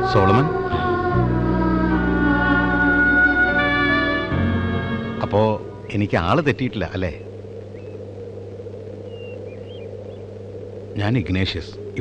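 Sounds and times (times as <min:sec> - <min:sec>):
steady low hum: 0:00.0 - 0:12.0
faint high chirps: 0:05.6 - 0:12.0.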